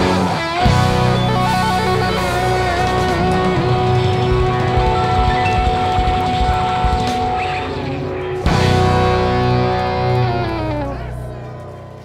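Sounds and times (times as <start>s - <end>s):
distorted electric guitars droning: 0.0s - 12.0s
rock band jamming: 0.0s - 12.0s.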